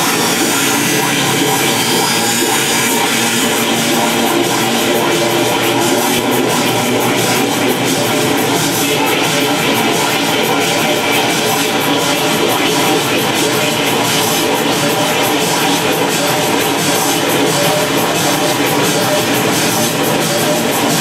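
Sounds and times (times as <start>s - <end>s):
loud experimental noise music: 0.0s - 21.0s.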